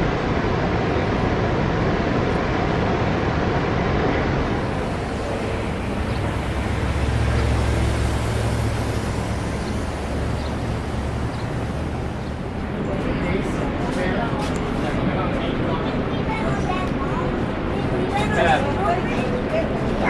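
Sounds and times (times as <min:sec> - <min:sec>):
street traffic: 0:00.0 - 0:20.0
vehicle engine rumbling: 0:00.0 - 0:20.0.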